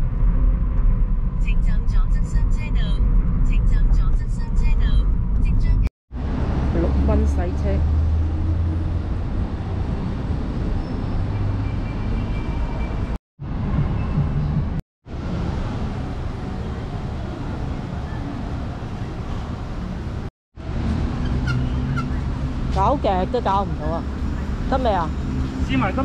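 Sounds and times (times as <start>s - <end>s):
road traffic noise: 0.0s - 26.0s.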